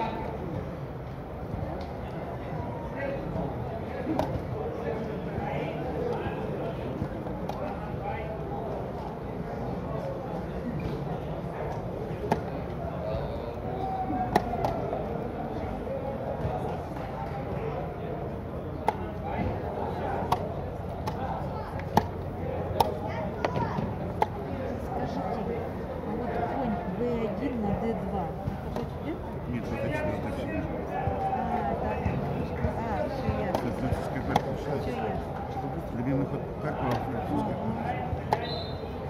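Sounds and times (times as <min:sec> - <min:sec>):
low murmur of voices: 0:00.0 - 0:39.0.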